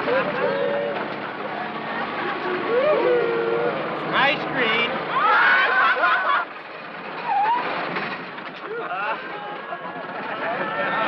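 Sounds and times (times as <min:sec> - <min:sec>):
men laughing and calling out: 0:05.2 - 0:06.6, 0:08.6 - 0:11.0.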